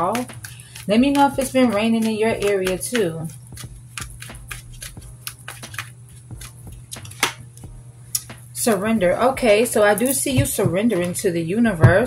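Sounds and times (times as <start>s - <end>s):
cards being shuffled: 0.0s - 8.3s
steady low hum: 0.0s - 12.0s.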